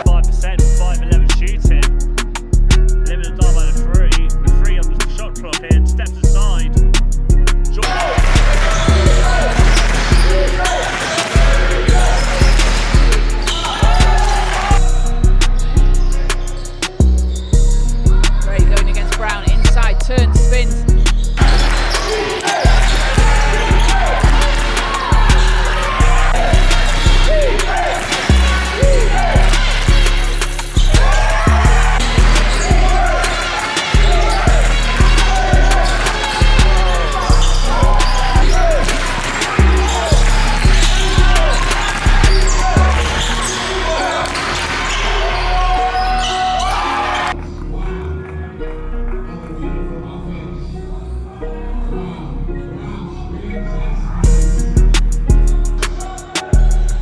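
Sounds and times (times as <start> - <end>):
rapping over a beat: 0.0 - 17.0, 17.9 - 43.1
heavy bass beat: 0.0 - 44.0, 54.2 - 57.0.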